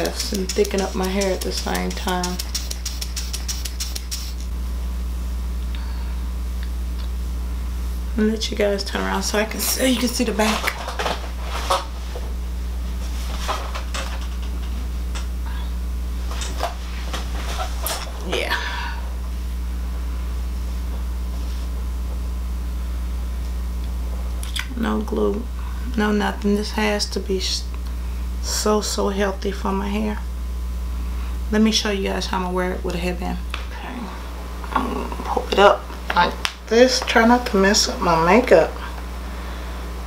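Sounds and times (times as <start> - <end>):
steady low hum: 0.0 - 40.0
spray puffing in short bursts: 0.2 - 4.5.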